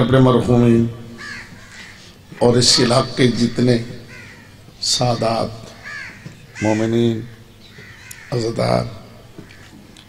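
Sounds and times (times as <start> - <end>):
man speaking over public address: 0.0 - 1.2, 2.3 - 4.1, 4.8 - 5.8, 6.6 - 7.4, 8.3 - 9.2.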